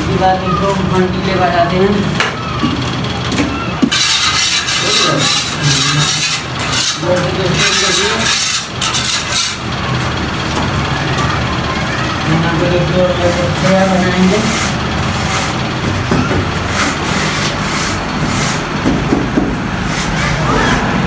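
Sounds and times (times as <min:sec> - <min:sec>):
metal straight edge scraping plaster: 0:03.9 - 0:09.6, 0:13.6 - 0:15.6, 0:16.6 - 0:18.7.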